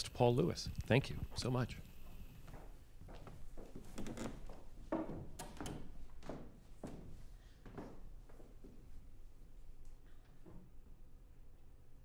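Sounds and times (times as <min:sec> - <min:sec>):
footsteps on stage: 0:01.4 - 0:09.0.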